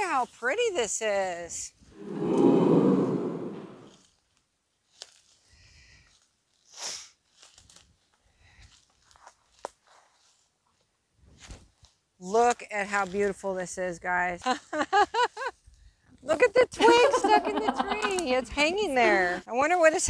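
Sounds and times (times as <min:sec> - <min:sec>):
loud breathy rush of noise: 0:02.0 - 0:04.0.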